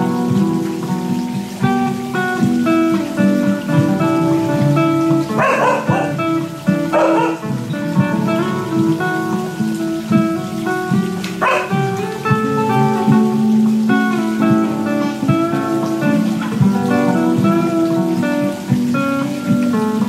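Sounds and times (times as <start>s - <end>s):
acoustic guitar arpeggio: 0.0s - 20.0s
dog barking: 5.3s - 7.5s, 11.3s - 12.0s.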